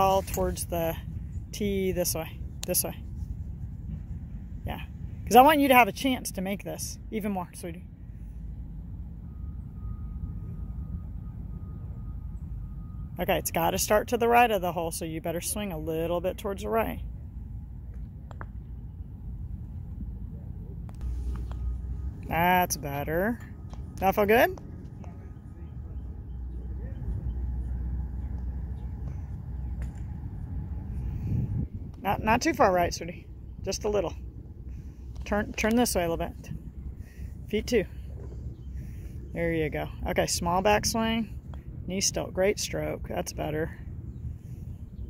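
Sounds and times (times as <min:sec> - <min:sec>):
low rumbling background noise: 0:00.0 - 0:45.0.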